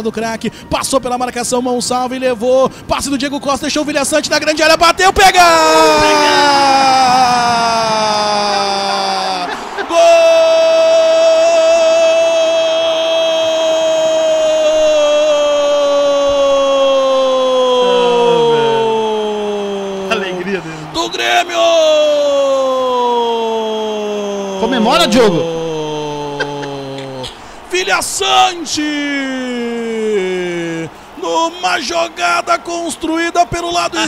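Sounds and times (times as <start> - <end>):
man shouting drawn-out goal cry: 5.3 - 34.0.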